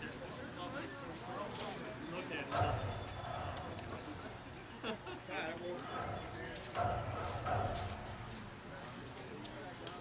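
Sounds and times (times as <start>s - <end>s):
players talking and calling out: 0.0s - 10.0s.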